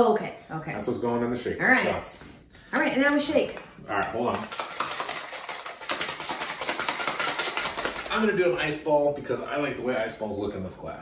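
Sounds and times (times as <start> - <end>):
cocktail shaker rattling: 4.3 - 8.2.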